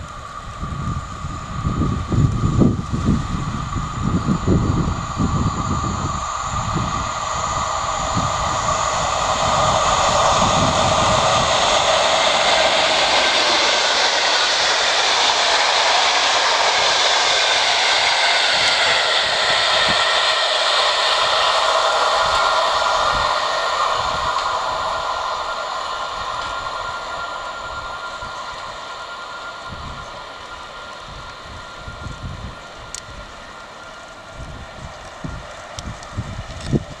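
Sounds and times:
train wheels rushing on rail: 0.0 - 37.0.

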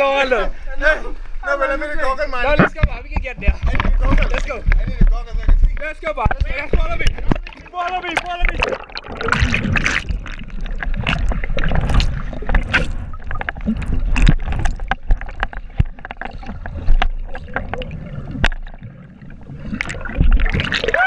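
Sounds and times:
underwater water sloshing and bubbling: 2.0 - 21.0
sharp underwater clicks and knocks: 2.5 - 21.0.

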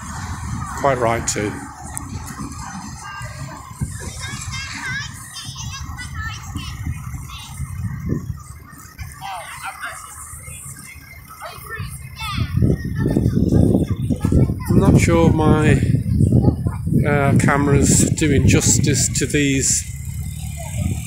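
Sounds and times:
children shouting and squealing: 0.0 - 21.0
low rumble: 0.0 - 21.0
people chattering: 0.0 - 21.0.

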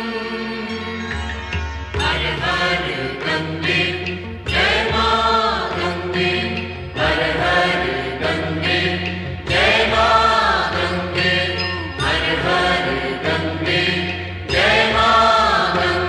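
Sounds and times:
devotional song voices: 0.0 - 1.2, 1.9 - 16.0
instrumental accompaniment: 0.0 - 16.0.

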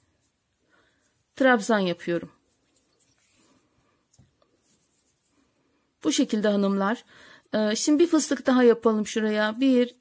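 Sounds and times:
yarn rustling: 0.0 - 6.8.

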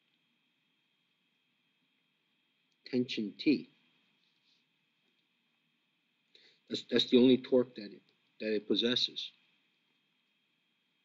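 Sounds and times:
man speaking: 2.9 - 3.7, 6.7 - 9.3.

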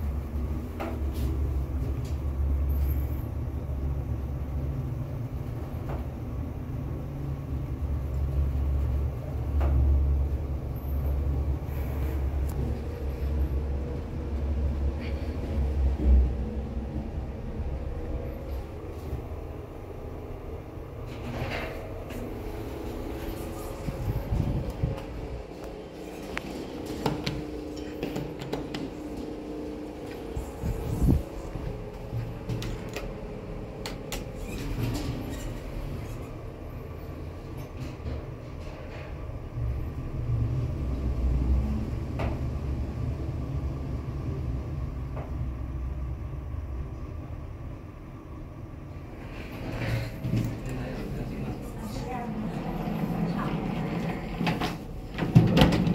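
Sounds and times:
lift car rumbling: 0.0 - 46.4, 48.8 - 55.9
lift doors sliding: 7.8 - 43.1, 48.9 - 55.9.

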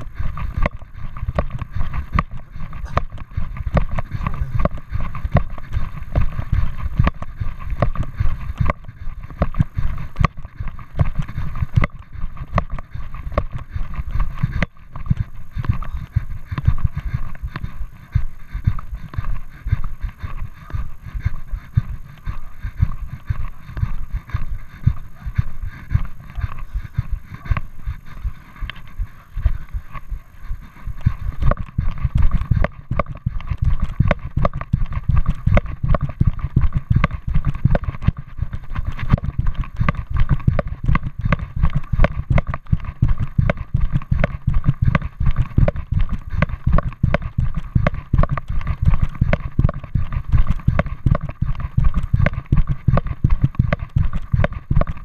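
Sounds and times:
footsteps on a path: 0.0 - 55.0.

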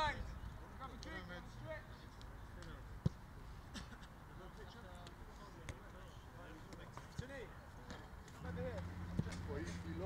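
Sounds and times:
low steady engine hum: 8.3 - 10.0
footballs being kicked: 9.1 - 9.5.

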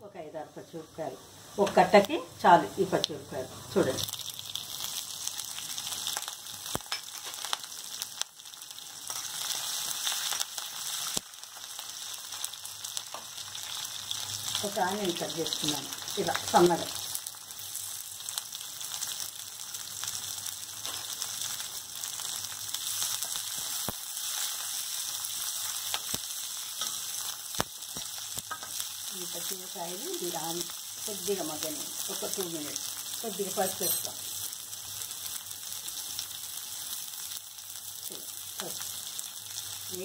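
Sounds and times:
onions sizzling in hot oil: 0.0 - 40.0
sharp crackles: 3.9 - 40.0.

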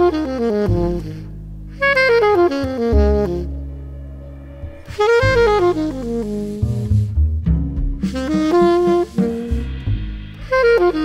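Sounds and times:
jazz saxophone playing: 0.0 - 7.2, 8.0 - 11.0
walking bass line: 0.0 - 11.0.

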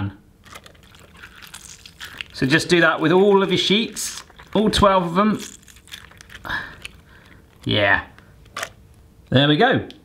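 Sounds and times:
wet gelatine sheets crinkling: 0.4 - 9.0.

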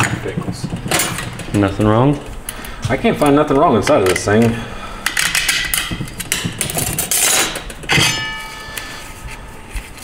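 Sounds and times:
metal parts clinking and clattering: 5.0 - 8.8
metallic clang ringing: 5.2 - 9.7.

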